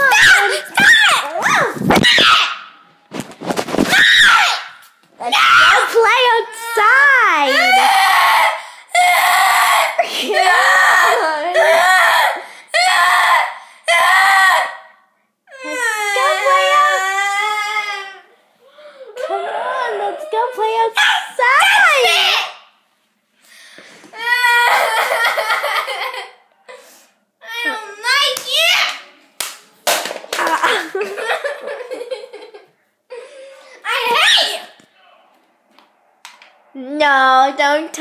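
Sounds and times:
girl screaming: 0.0s - 2.7s, 3.9s - 14.9s, 15.5s - 18.3s, 21.0s - 22.6s, 24.2s - 25.2s, 33.8s - 34.8s
girl laughing: 24.7s - 26.4s, 30.4s - 33.4s.

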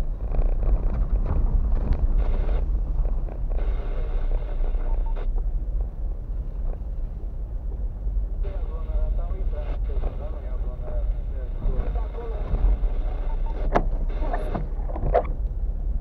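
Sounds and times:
windscreen wipers knocking: 0.0s - 3.7s, 13.6s - 15.5s
car road noise rumble: 0.0s - 16.0s.

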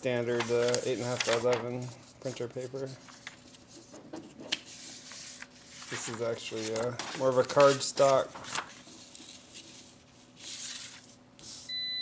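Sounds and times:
card stock rustling: 0.3s - 11.6s.

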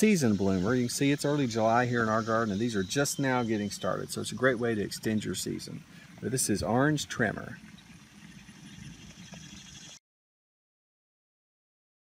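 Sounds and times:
low uneven rumble: 0.0s - 10.0s.

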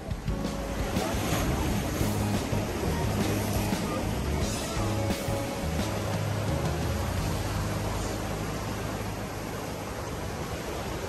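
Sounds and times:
background music with low notes: 0.0s - 10.0s
surf washing against rocks: 0.0s - 11.0s.

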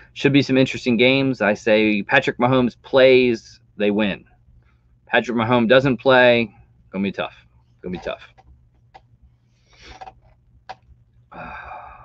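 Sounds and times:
faint low hum: 0.0s - 12.0s
soft breath: 9.3s - 10.1s, 11.3s - 12.0s.

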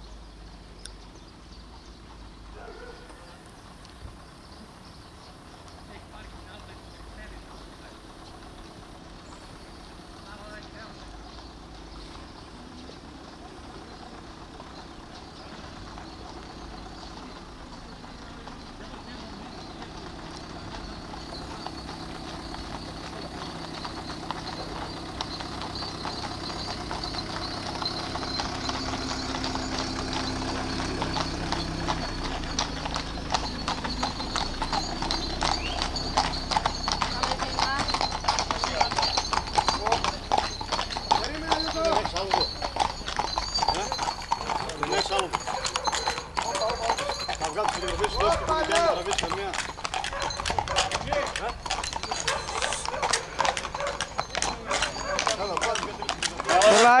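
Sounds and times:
low engine hum: 0.0s - 48.1s
horse hooves clip-clopping on pavement: 0.0s - 57.0s
people's voices: 5.8s - 57.0s.

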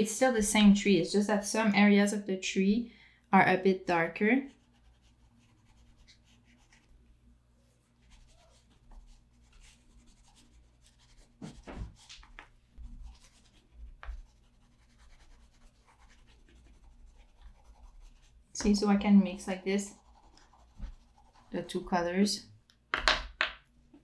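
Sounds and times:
faint steady hum: 0.0s - 23.0s
pastel scribbling on paper: 4.5s - 6.9s, 8.0s - 18.4s, 19.4s - 21.7s.

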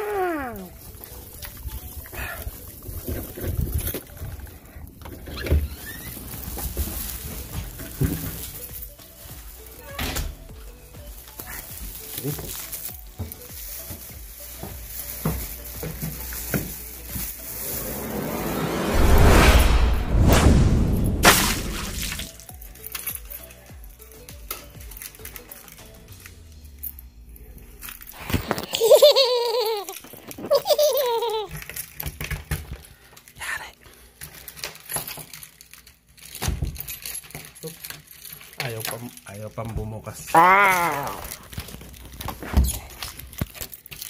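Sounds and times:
keys jingling: 6.0s - 9.9s, 11.0s - 18.2s, 22.4s - 28.2s, 34.2s - 39.3s, 42.8s - 44.0s
hissing swell: 17.4s - 22.2s
deep rumble: 17.5s - 22.2s.

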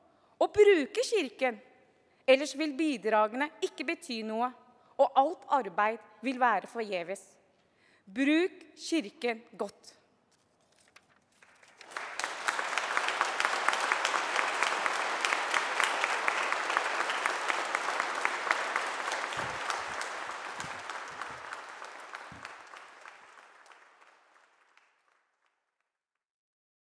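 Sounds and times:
audience applauding: 11.4s - 25.6s.

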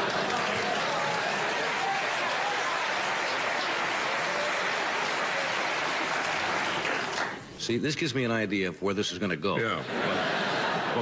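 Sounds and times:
audience laughing: 0.0s - 1.8s, 9.6s - 11.0s
audience applauding: 0.0s - 7.5s.

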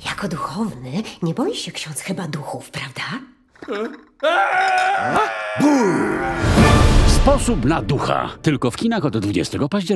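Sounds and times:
man wailing in fright: 4.2s - 6.6s.

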